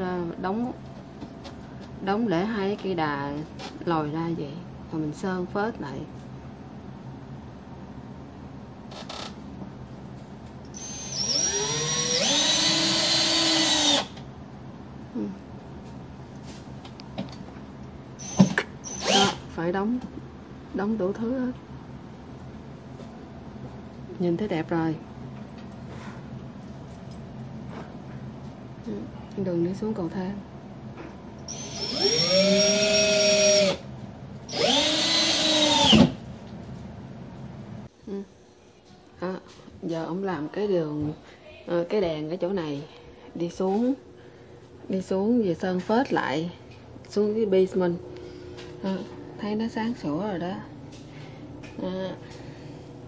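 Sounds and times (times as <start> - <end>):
cordless drill motor whine: 10.7 - 14.2, 18.2 - 19.4, 31.5 - 33.9, 34.5 - 36.2.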